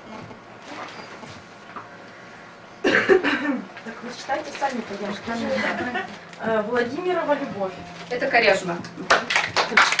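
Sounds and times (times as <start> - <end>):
person coughing: 2.8 - 3.7.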